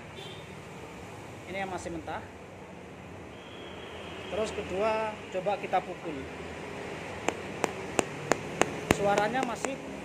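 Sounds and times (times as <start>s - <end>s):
tool tapping fruit husk: 7.2s - 10.0s.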